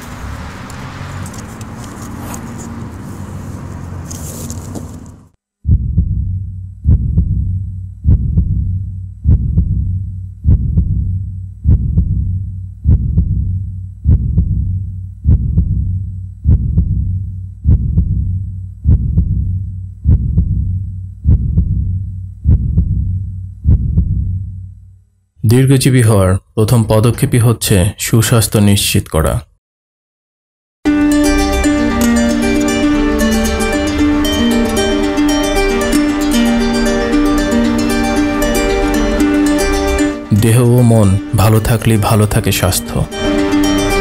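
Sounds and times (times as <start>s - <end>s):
deep heartbeat-like thumps: 5.6s - 24.8s.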